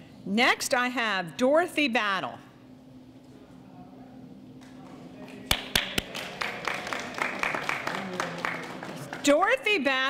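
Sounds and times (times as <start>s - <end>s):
audience applause: 5.5s - 9.4s.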